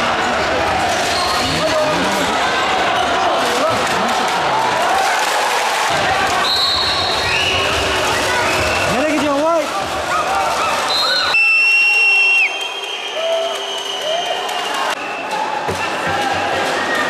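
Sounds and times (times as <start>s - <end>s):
spectators talking and shouting: 0.0s - 17.0s.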